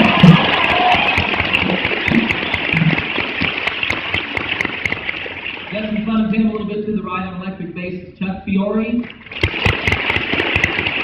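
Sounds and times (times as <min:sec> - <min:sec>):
audience applauding: 0:00.0 - 0:06.0, 0:09.4 - 0:11.0.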